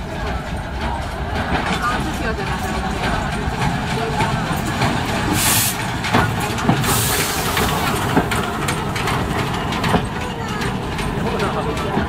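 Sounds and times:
train rolling rumble: 0.0 - 12.0
steam hiss bursts: 5.3 - 6.0, 6.8 - 8.4.

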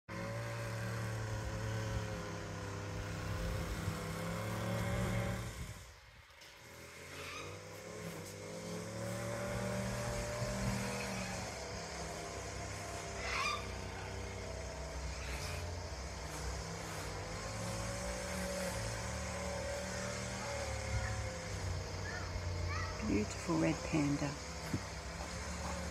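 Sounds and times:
motor engine running: 0.0 - 25.9.

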